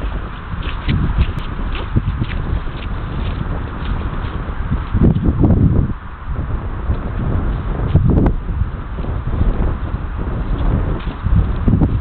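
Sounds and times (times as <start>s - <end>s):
footsteps squelching on wet grass: 0.0s - 6.2s, 6.8s - 12.0s
wind rumbling on microphone: 0.0s - 12.0s.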